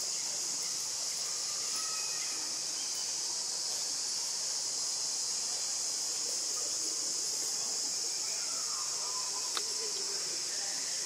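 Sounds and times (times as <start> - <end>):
insect chorus droning: 0.0 - 11.0.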